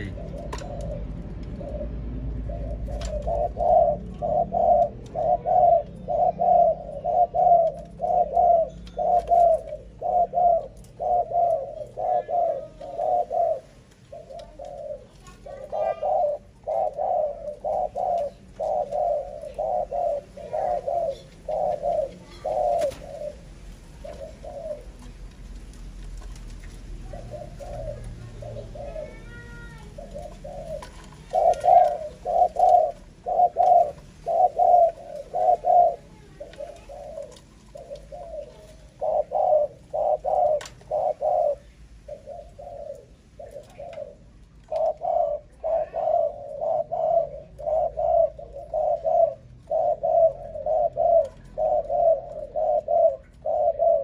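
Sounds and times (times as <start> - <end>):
doves cooing: 0.0 - 54.0.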